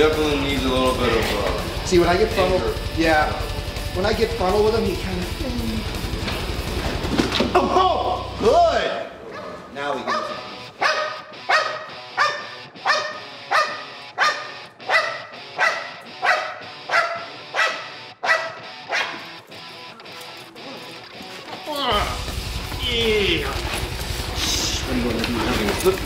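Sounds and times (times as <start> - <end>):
dog barking: 9.3 - 19.4.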